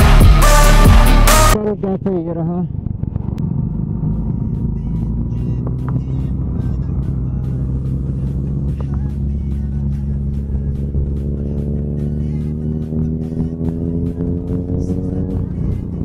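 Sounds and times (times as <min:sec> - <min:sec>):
background music with beat: 0:00.0 - 0:01.6
motorcycle engines running: 0:02.6 - 0:16.0.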